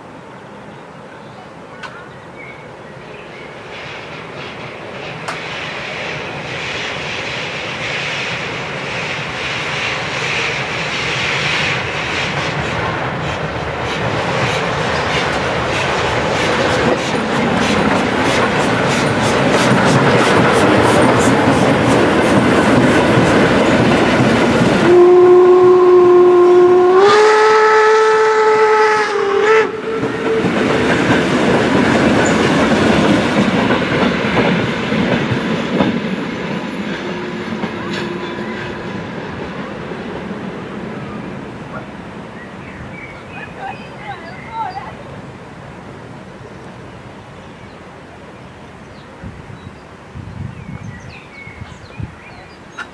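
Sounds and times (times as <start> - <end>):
train wheels clattering: 3.6 - 25.0, 29.8 - 40.6
steam whistle blast: 24.8 - 30.6.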